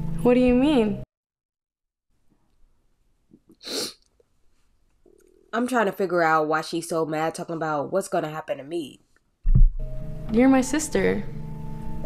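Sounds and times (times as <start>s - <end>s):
person exhaling sharply: 3.6s - 4.0s.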